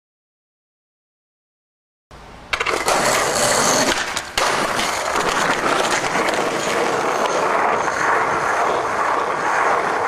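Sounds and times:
skateboard wheels rolling on concrete: 0:02.4 - 0:10.0.

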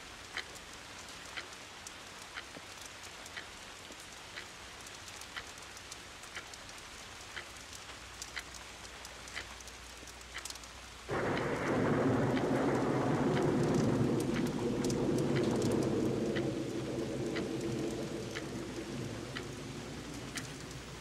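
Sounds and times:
rain falling: 0:00.0 - 0:21.0
thunderclap rumbling: 0:11.1 - 0:21.0.

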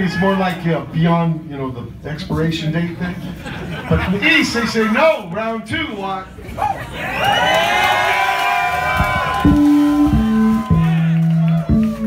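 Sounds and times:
crowd cheering and whooping: 0:06.5 - 0:12.0
electric bass guitar notes: 0:08.9 - 0:12.0.

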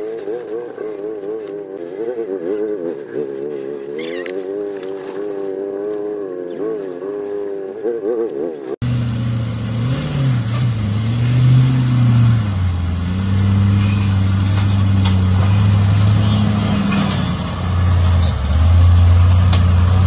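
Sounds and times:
engine running at low revs: 0:00.0 - 0:20.0.

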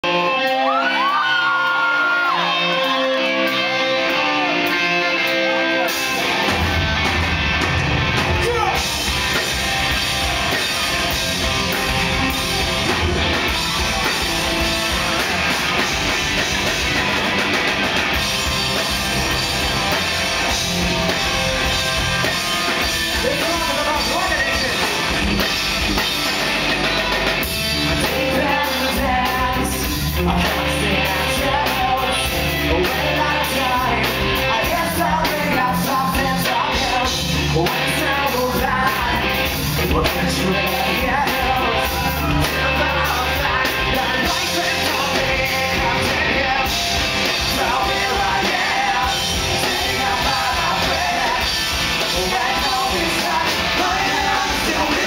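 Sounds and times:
drum kit: 0:00.0 - 0:55.0
electric guitar: 0:00.0 - 0:55.0
rock band playing loudly: 0:00.0 - 0:55.0
person singing: 0:27.9 - 0:55.0.

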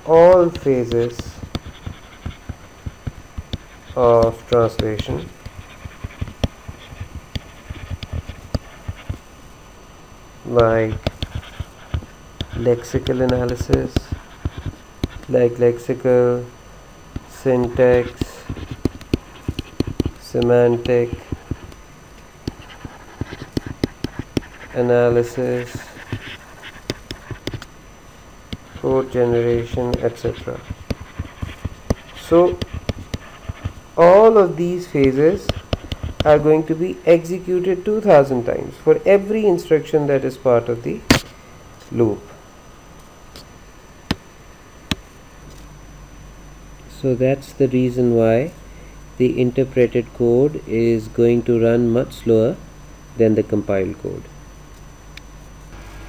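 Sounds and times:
stylus scratching: 0:00.0 - 0:09.3, 0:10.4 - 0:16.5, 0:17.1 - 0:27.8, 0:28.5 - 0:38.4
stylus tapping on tablet: 0:00.3 - 0:09.2, 0:10.6 - 0:15.3, 0:17.2 - 0:21.8, 0:22.4 - 0:24.6, 0:26.0 - 0:27.7, 0:30.7 - 0:33.8, 0:35.0 - 0:36.3.

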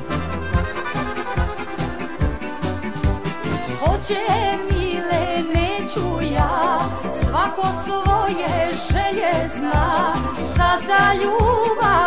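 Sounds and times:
accordion melody: 0:00.0 - 0:12.0
disco beat of drums and bass: 0:00.0 - 0:12.0.

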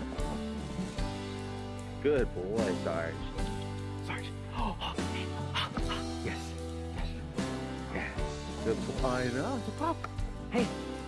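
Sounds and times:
guitar background music: 0:00.0 - 0:11.0.

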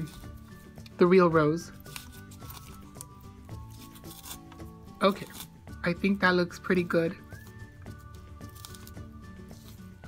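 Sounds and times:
soft background music: 0:00.0 - 0:10.0
dried moss crackling: 0:01.6 - 0:05.6, 0:07.3 - 0:10.0.

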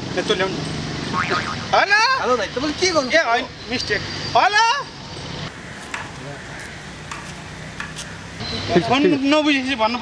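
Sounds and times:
outdoor ambience hiss: 0:00.0 - 0:10.0.

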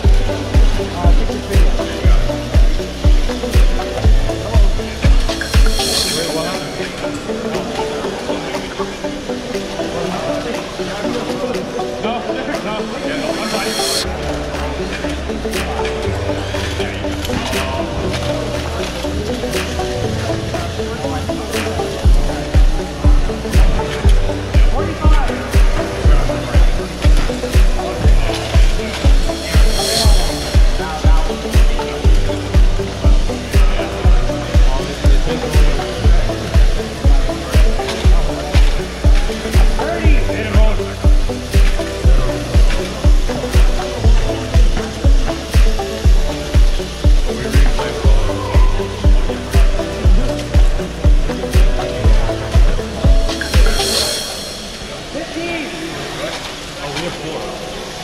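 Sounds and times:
loud music with bass beat: 0:00.0 - 0:11.0, 0:13.2 - 0:54.9
voices talking: 0:00.0 - 0:57.9.

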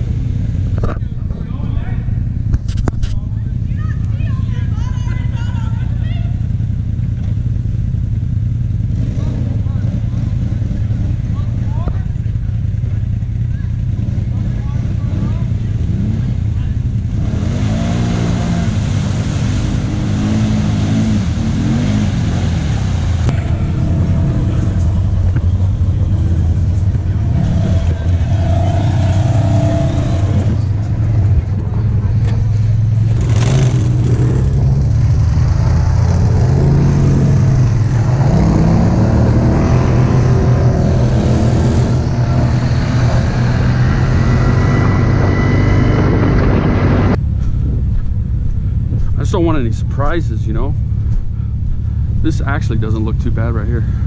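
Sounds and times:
off-road vehicle engines revving: 0:00.0 - 0:54.0.

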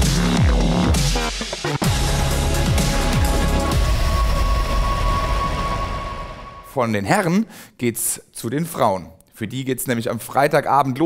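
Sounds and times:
steady rushing noise: 0:03.5 - 0:06.7.

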